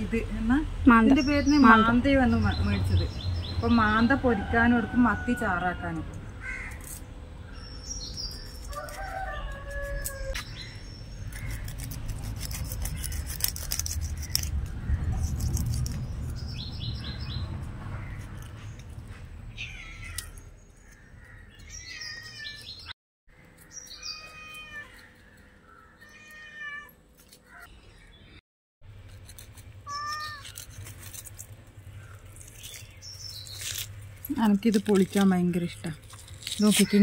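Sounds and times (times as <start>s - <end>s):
knife scraping fish scales: 11.3s - 16.5s, 29.0s - 35.2s.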